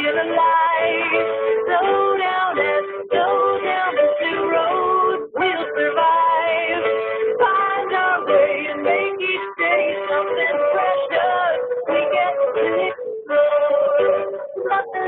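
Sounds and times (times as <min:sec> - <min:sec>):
instrumental backing: 0:00.0 - 0:15.0
people singing a song: 0:00.0 - 0:15.0.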